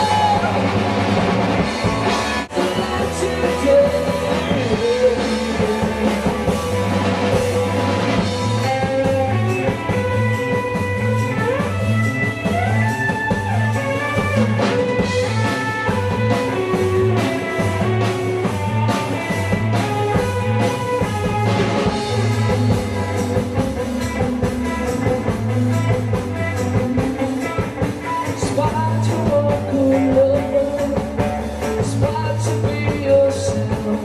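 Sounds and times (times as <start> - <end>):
electric guitar: 0.0 - 34.0
live rock band playing: 0.0 - 34.0.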